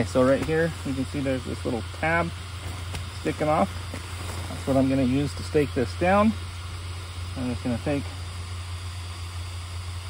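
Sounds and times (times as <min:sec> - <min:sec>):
electric blower fan humming: 0:00.0 - 0:10.0.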